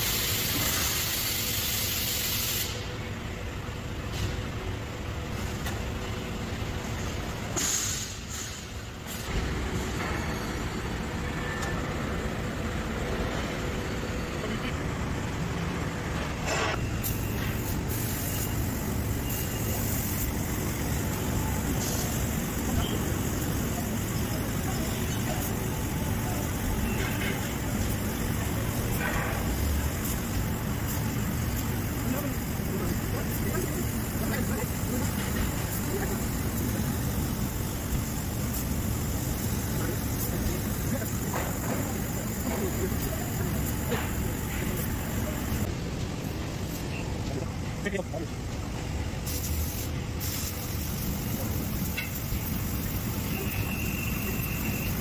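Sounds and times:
laser cutting machine hissing: 0.0s - 14.8s, 15.8s - 47.2s, 47.8s - 55.0s.

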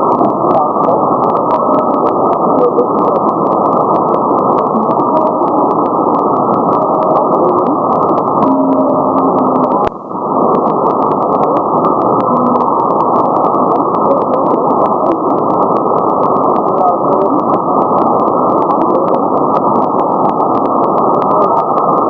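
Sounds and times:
crackling static clicks: 0.0s - 22.0s
radio band noise hiss: 0.0s - 22.0s
faint radio tone fragments: 0.1s - 21.8s.

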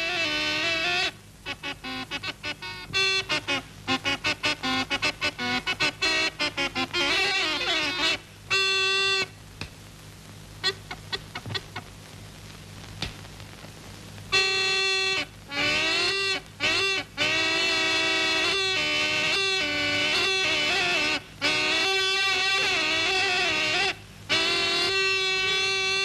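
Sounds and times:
reedy gourd pipe melody: 0.0s - 9.4s, 10.6s - 11.9s, 14.3s - 26.0s.

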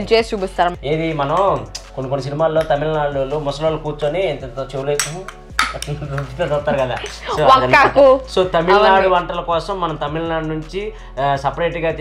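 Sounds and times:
voices: 5.0s - 10.1s.

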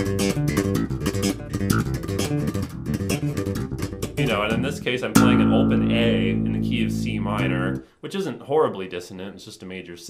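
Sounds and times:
slap bass playing: 0.0s - 7.9s
open bass string ringing: 0.2s - 7.8s.

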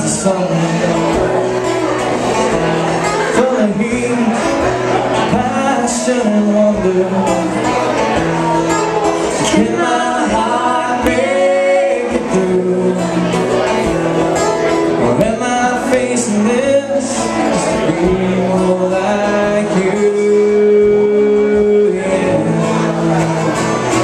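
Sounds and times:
person singing lead vocal: 0.0s - 1.7s, 3.0s - 24.0s
acoustic guitars strumming: 0.0s - 24.0s.

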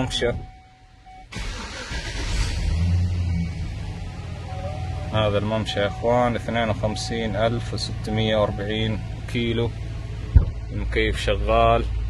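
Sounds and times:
pickup engine starting and idling: 1.1s - 12.0s.

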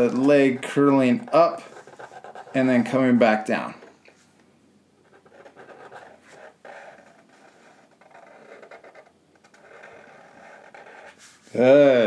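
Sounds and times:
marker scratching on paper: 0.0s - 3.0s, 5.0s - 11.6s.

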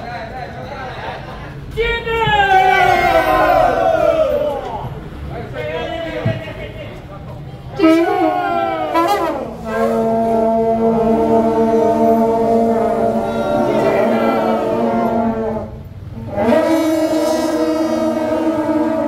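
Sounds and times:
brass horns droning: 2.5s - 5.0s, 7.7s - 19.0s.

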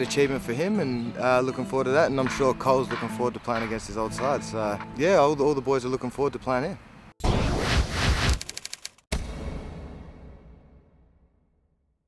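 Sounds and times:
stuttering clicks: 8.2s - 9.0s.

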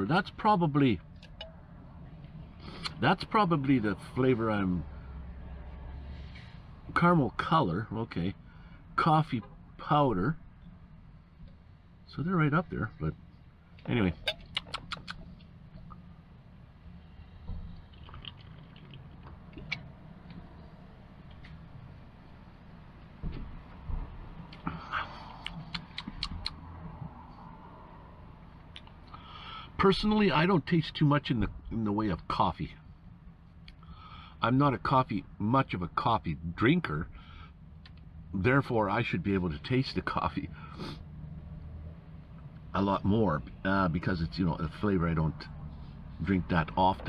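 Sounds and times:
low background hum: 0.0s - 47.0s
sipping and swallowing cola: 17.8s - 19.8s.

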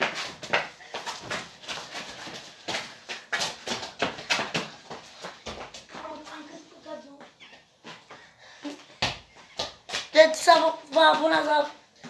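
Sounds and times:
ball bouncing on hard ground: 0.0s - 6.3s.

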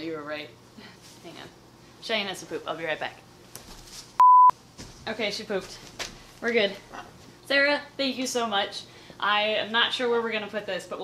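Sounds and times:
electronic censor beep: 4.2s - 4.5s.

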